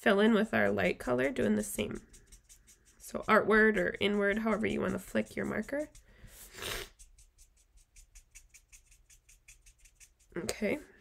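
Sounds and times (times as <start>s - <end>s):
marker scratching on cardstock: 0.3s - 10.4s.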